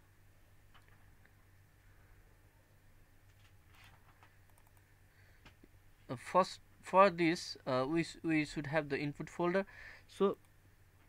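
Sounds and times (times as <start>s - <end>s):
faint hum: 0.0s - 11.0s
computer mouse clicks: 4.1s - 4.9s.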